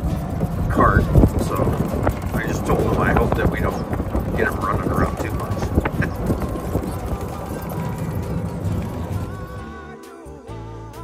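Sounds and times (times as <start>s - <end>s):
golf cart body rattling: 0.0s - 9.6s
wind rumble on microphone: 0.0s - 9.6s.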